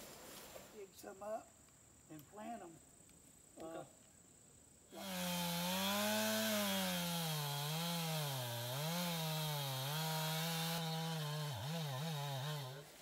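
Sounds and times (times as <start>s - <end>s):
chainsaw cutting log: 4.9s - 13.0s.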